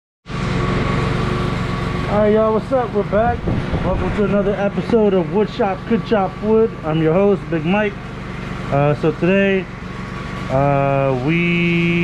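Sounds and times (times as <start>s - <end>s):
machine humming with low throb: 0.3s - 12.0s.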